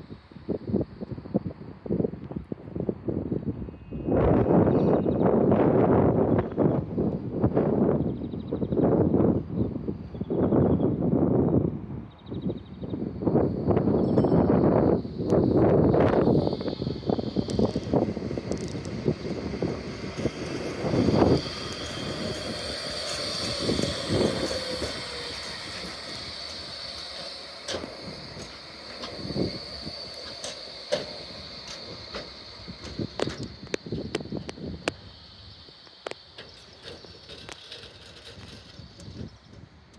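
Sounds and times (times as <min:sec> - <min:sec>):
tram wheels on rails: 0:12.7 - 0:39.9
high electric whine: 0:12.9 - 0:39.6
heavy low rumbling: 0:14.6 - 0:35.4.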